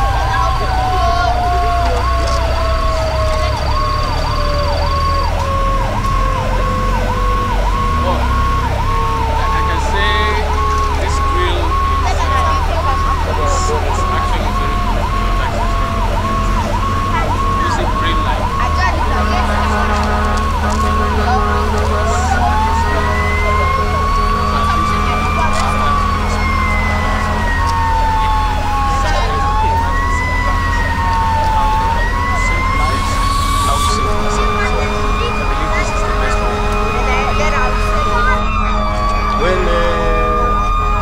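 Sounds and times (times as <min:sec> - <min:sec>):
siren wailing: 0:00.0 - 0:41.0
steady low drone: 0:00.0 - 0:41.0.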